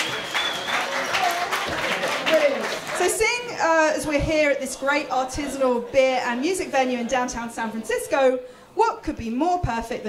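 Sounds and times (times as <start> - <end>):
audience applauding: 0.0 - 3.2.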